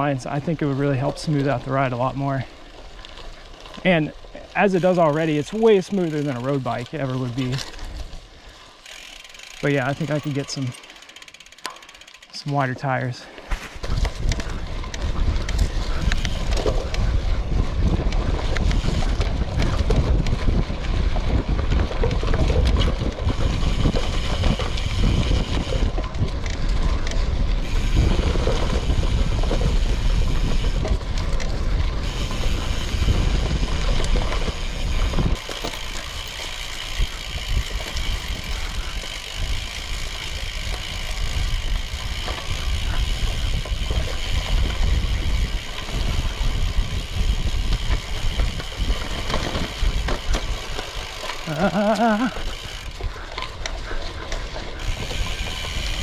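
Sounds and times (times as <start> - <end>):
bike rattling: 0.0 - 56.0
bike tyres rolling over dirt: 0.0 - 56.0
wind on microphone: 13.5 - 50.8, 51.6 - 56.0.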